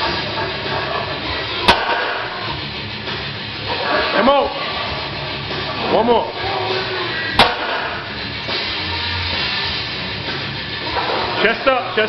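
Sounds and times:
rock music: 0.0 - 12.0.

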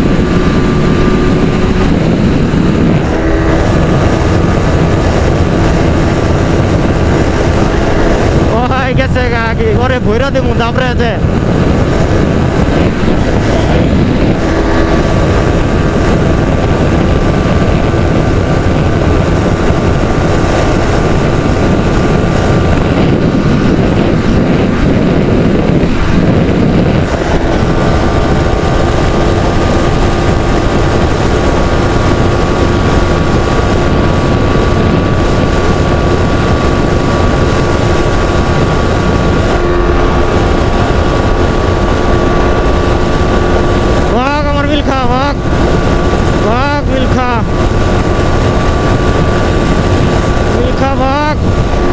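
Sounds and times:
motorcycle engine cruising: 0.0 - 51.9
wind noise on microphone: 0.0 - 51.9.

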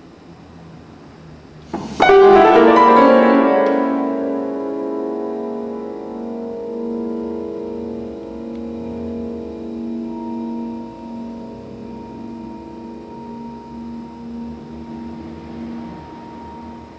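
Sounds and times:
high vibraphone note: 2.0 - 16.9
vibraphone chord ringing: 2.0 - 16.9.

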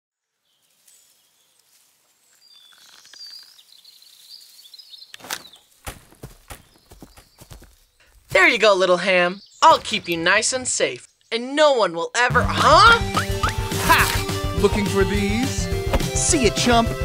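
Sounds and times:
bird chirps: 2.3 - 5.8, 6.4 - 11.6
soft footsteps: 4.0 - 8.4.

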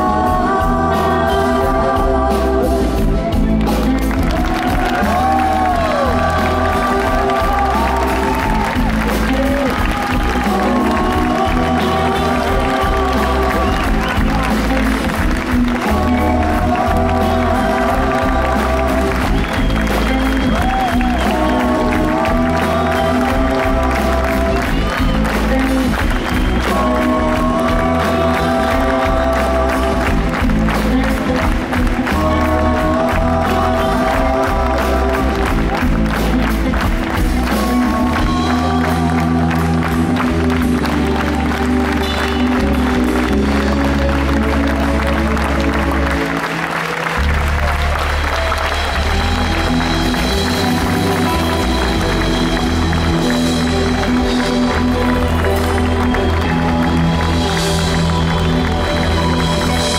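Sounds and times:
audience applause: 0.0 - 59.9
drum kit: 0.0 - 59.9
electric bass: 0.0 - 59.9
electric guitar: 0.0 - 59.9
keyboards: 0.0 - 59.9.

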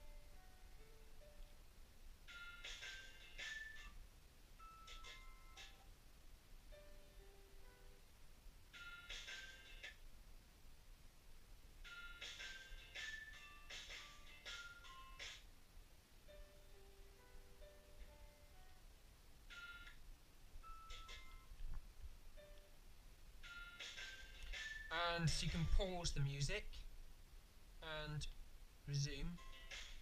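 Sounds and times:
faint music from small speaker: 0.0 - 30.0.

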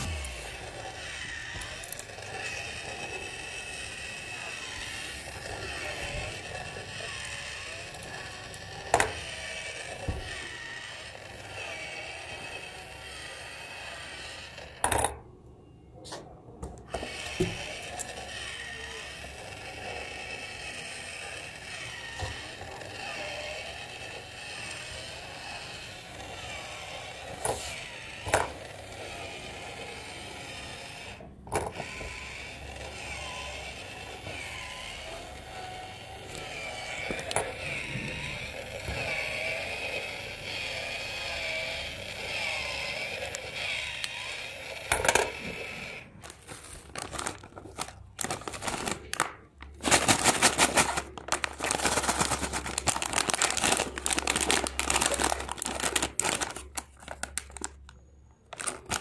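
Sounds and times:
electric motor and gears whirring: 0.0 - 15.2, 16.7 - 59.0.

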